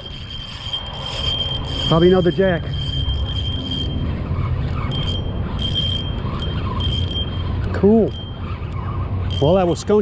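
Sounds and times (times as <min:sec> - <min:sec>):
road traffic rumble: 0:00.0 - 0:10.0
thin high whine: 0:00.0 - 0:10.0.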